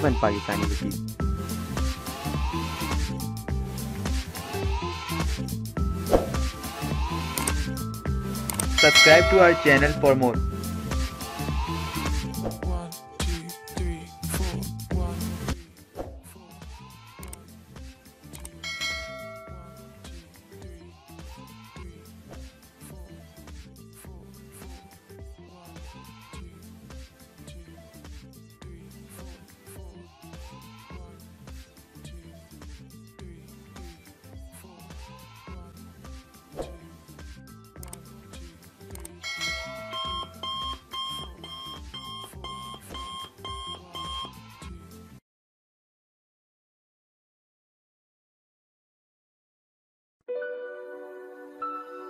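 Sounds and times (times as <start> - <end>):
background music with steady beat: 0.0 - 45.2
alarm clock beeping: 8.6 - 10.2, 39.2 - 44.4
bell chime: 8.7 - 10.4, 18.6 - 20.0, 39.2 - 42.2.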